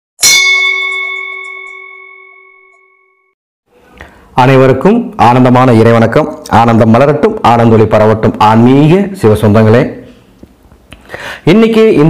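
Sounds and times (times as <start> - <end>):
bell-like ding: 0.2 - 3.4.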